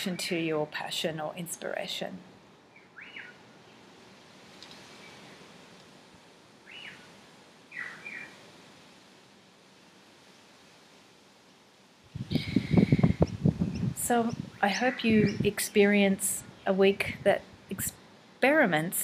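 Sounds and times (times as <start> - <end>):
bird chirps: 2.8 - 3.4, 6.7 - 7.0, 7.7 - 8.3
microphone handling noise: 12.1 - 15.5.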